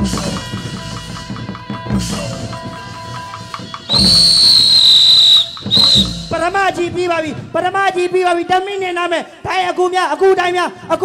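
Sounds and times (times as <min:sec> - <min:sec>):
traditional ensemble music: 0:00.0 - 0:07.6
shrill steady whistle tone: 0:03.9 - 0:06.8.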